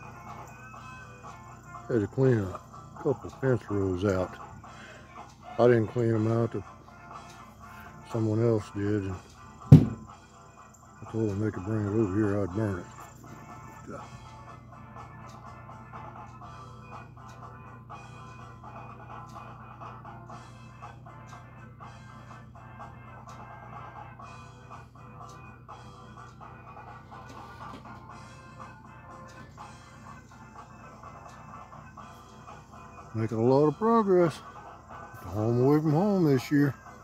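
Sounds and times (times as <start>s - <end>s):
background music with sustained tones: 0.0s - 37.0s.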